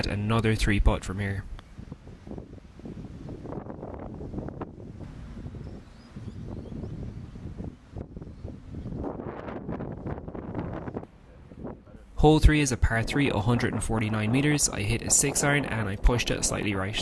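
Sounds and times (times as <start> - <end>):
gusty wind buffeting microphone: 0.0 - 17.0.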